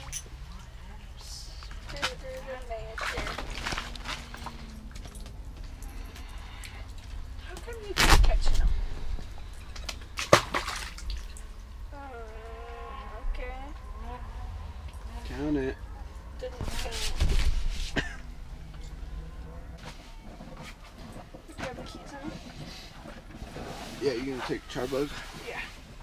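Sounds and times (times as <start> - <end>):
steady low rumble: 0.2 - 24.0
thump and slosh: 16.6 - 18.0.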